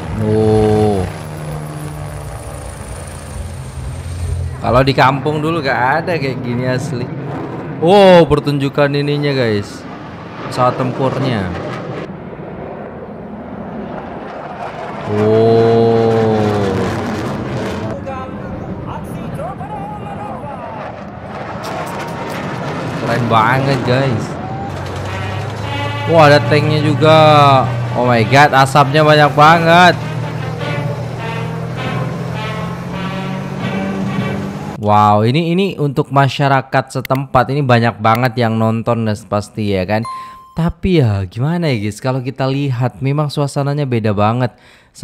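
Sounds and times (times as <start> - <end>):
helicopter flying overhead: 0.0 - 34.8.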